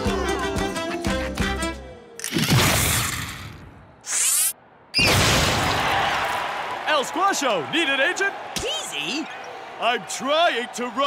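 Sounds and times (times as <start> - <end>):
cartoon crash: 5.0 - 6.0.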